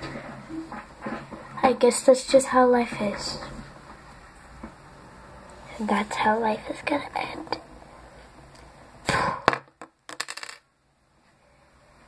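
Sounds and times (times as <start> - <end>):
plastic piece bouncing: 9.4 - 10.6.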